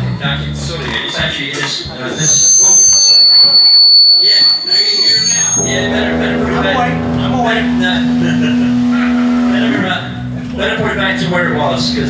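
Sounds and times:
microphone feedback squeal: 2.1s - 9.8s.

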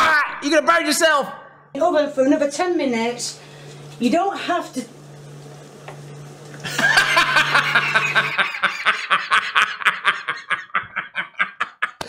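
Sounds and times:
men laughing: 6.6s - 12.0s.

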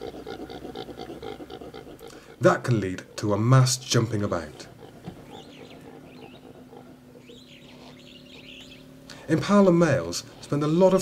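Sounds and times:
impala grunting call: 0.0s - 10.8s.

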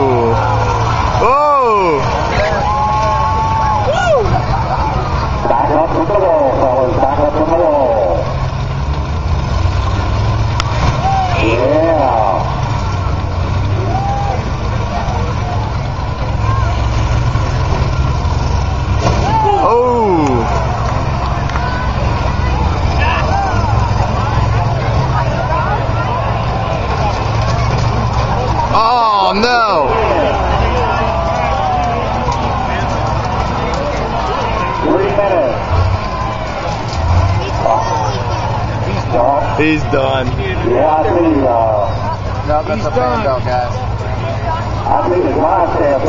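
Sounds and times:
engines rumbling: 0.0s - 46.0s
voices: 0.0s - 46.0s.

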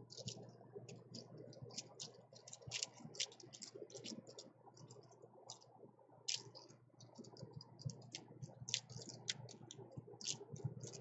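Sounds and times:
plastic sticks clicking together: 0.0s - 5.6s, 6.3s - 11.0s.

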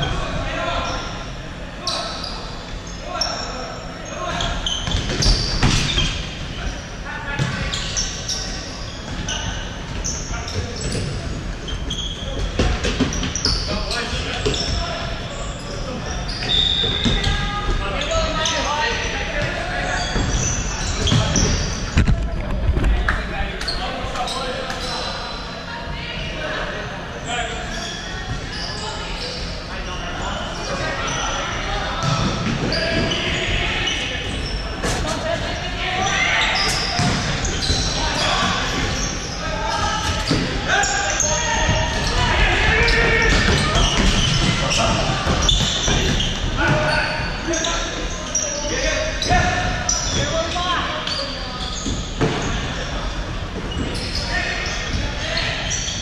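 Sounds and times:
players calling out: 23.2s - 56.0s.

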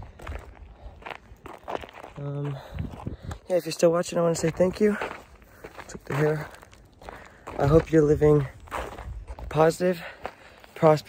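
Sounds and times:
footsteps outdoors: 0.0s - 11.0s.

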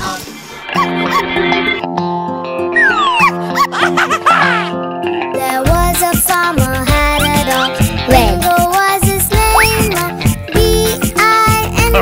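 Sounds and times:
held notes with falling slide: 2.7s - 3.5s.

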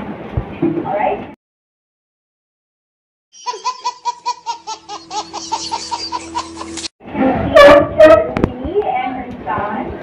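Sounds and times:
baby laughing: 3.4s - 6.9s.

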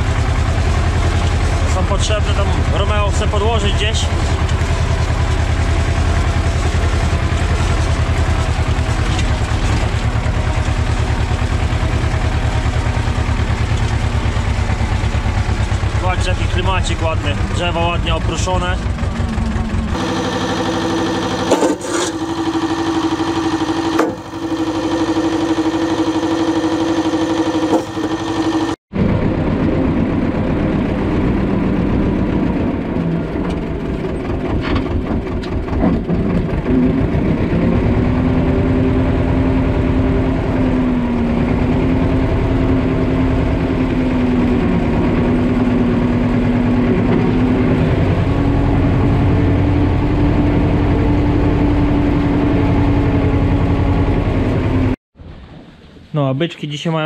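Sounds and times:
tractor engine running: 0.0s - 55.6s
sharp knocks: 23.9s - 24.3s.

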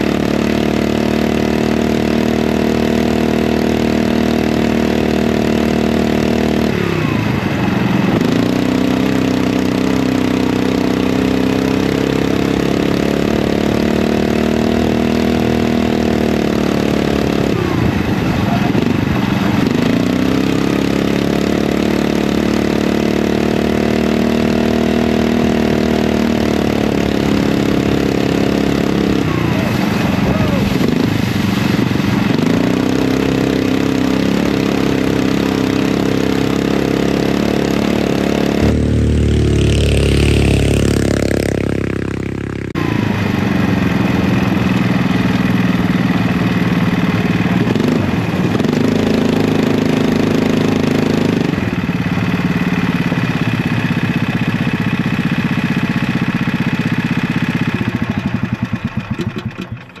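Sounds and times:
single-cylinder engine revving: 0.0s - 60.0s.

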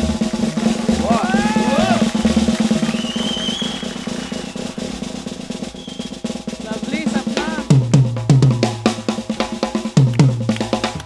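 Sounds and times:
snare drum roll: 0.0s - 11.0s.

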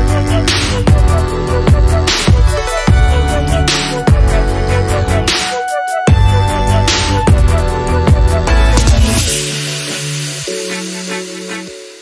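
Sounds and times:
electronic synth chords: 0.0s - 12.0s.

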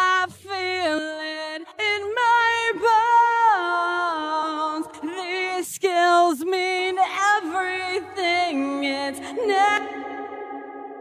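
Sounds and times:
person singing with reverb: 0.0s - 11.0s.

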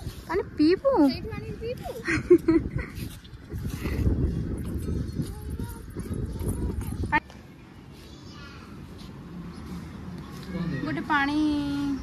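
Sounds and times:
wind buffeting microphone: 0.0s - 7.3s.

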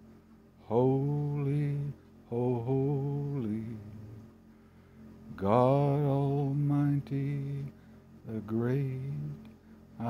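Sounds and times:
man singing: 0.6s - 4.1s, 5.3s - 9.5s.

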